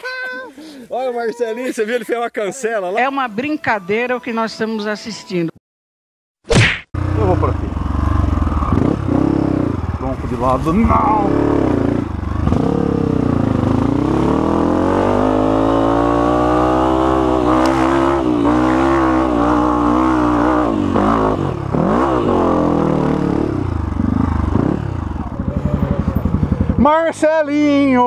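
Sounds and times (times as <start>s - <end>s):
motorcycle engine revving: 7.0s - 28.0s.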